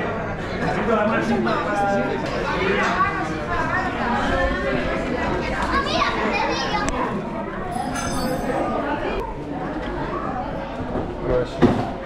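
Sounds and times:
restaurant background chatter: 0.0 - 12.0
children's voices: 2.1 - 12.0.

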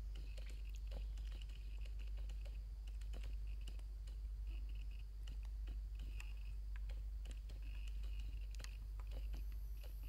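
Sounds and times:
faint high-pitched hum: 0.0 - 10.0
light clicks and ticks: 0.0 - 10.0.

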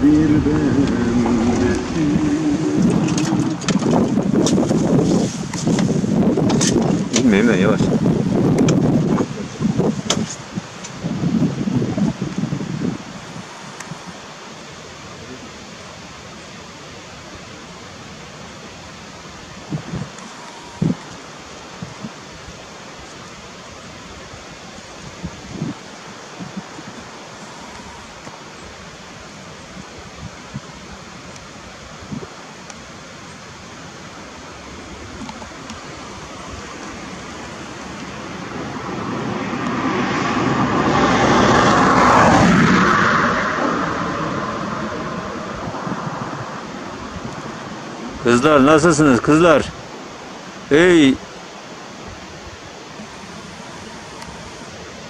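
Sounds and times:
vehicle passing on road: 0.0 - 6.2, 34.5 - 48.4
background hiss: 0.0 - 55.0.

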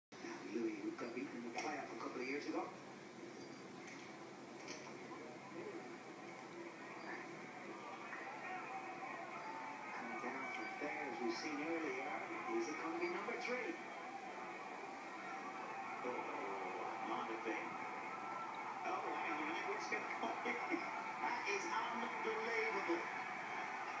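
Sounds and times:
voices on television broadcast: 0.2 - 24.0
crowd noise: 4.0 - 24.0.

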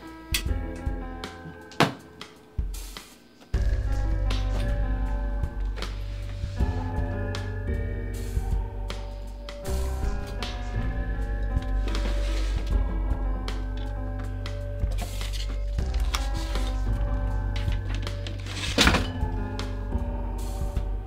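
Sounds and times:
film score music: 0.1 - 21.0.

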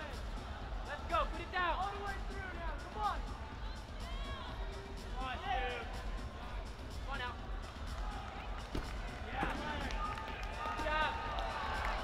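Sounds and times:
crowd voices: 0.0 - 12.0.

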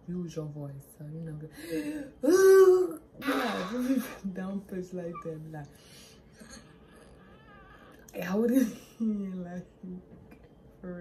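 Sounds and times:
newborn baby whimpering: 6.4 - 8.1.

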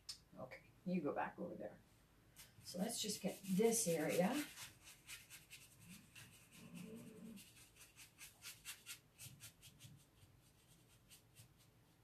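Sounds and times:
paintbrush strokes on wood: 2.4 - 12.0.

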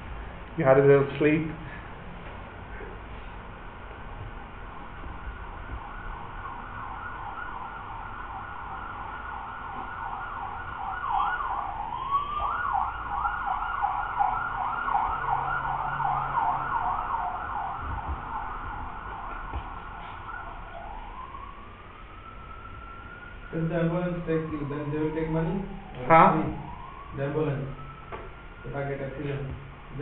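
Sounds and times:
ambulance siren: 4.0 - 30.0.

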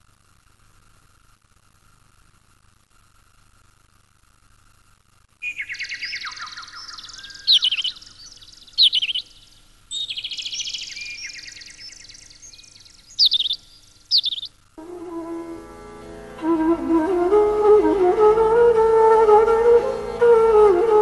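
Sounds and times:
songbirds chirping and trilling: 5.4 - 14.6.

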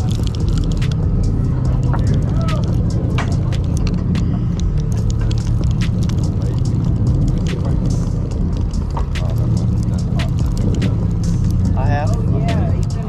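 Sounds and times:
boat engine rumbling: 0.0 - 13.0
voices: 0.0 - 13.0.

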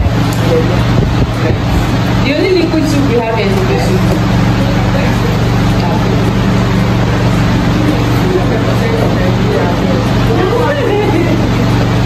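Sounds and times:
low mechanical drone: 0.0 - 12.0.

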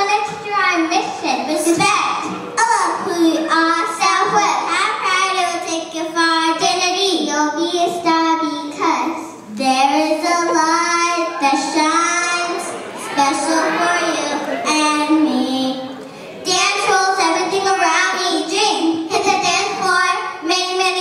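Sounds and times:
child singing: 2.8 - 21.0.

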